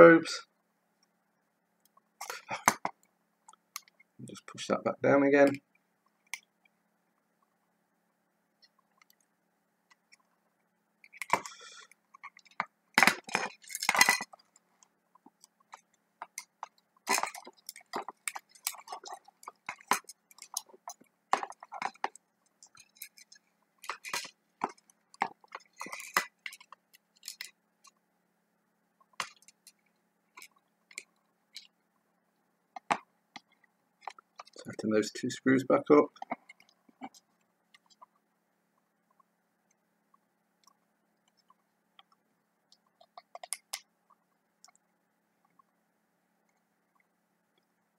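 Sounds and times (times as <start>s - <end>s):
small parts clicking and clinking: 11.0s - 28.0s.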